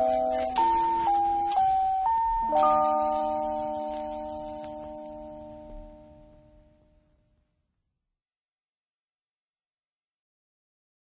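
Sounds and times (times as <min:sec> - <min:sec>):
held chord of background music: 0:00.0 - 0:07.0.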